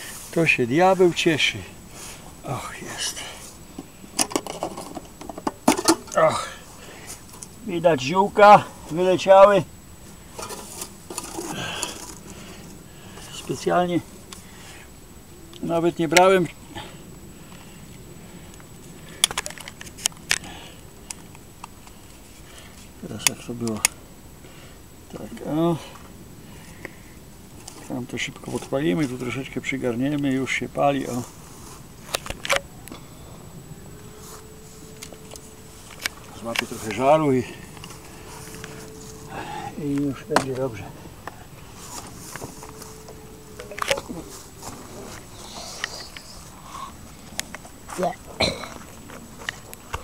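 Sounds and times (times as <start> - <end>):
dry grass rustling: 0.0 - 15.5, 26.3 - 50.0
dry herbs rustling: 33.4 - 49.7.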